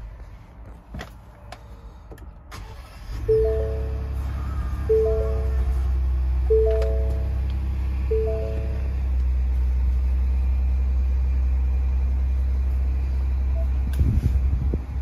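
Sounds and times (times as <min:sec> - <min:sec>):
car engine idling: 0:01.4 - 0:14.0
three-note chime: 0:03.3 - 0:04.0, 0:04.9 - 0:05.7, 0:06.5 - 0:07.4, 0:08.1 - 0:09.0.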